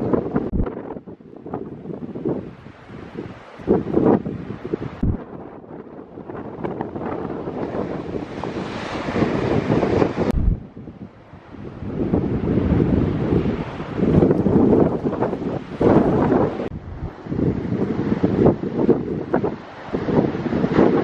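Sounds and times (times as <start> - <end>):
wind buffeting microphone: 0.0 - 21.0
surf breaking on beach: 2.2 - 10.7, 11.5 - 21.0.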